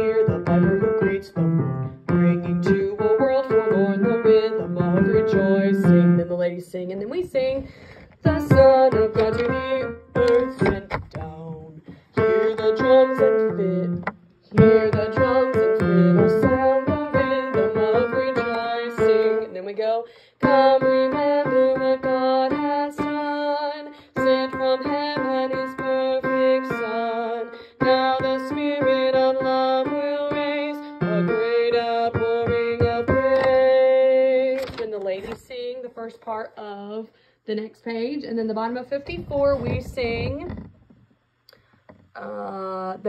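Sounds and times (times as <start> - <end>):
piano chords: 0.0 - 6.8, 8.2 - 34.7.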